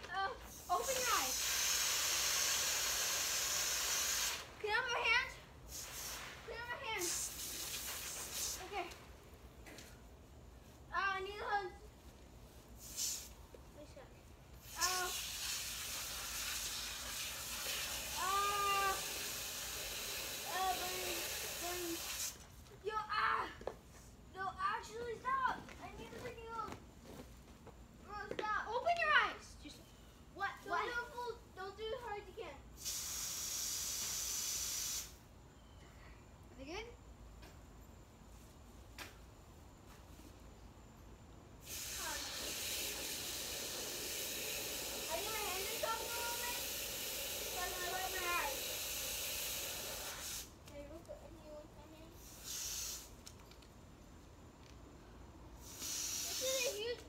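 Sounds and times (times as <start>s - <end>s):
water spraying hiss: 0.4s - 9.0s, 12.8s - 13.4s, 14.6s - 22.5s, 32.8s - 35.3s, 41.6s - 50.7s, 52.0s - 53.4s, 55.6s - 57.0s
children calling out: 18.1s - 19.2s, 56.2s - 57.0s.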